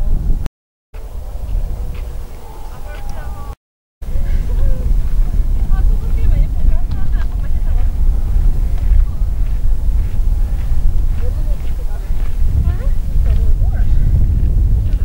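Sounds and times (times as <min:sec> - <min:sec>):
wind buffeting microphone: 0:00.0 - 0:15.0
faint voices: 0:01.1 - 0:14.1.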